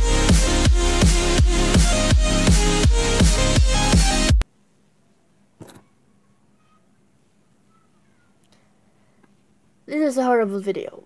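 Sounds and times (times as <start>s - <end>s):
girl speaking loudly: 9.9s - 11.0s.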